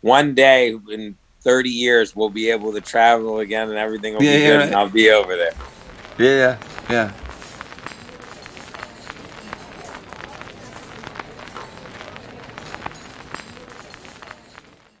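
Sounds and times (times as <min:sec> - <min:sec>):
vinyl record crackle and pops: 0:00.0 - 0:15.0.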